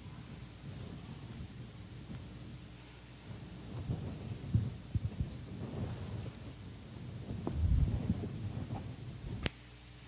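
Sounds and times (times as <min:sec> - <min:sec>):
low rumbling handling noise: 0:07.3 - 0:09.5.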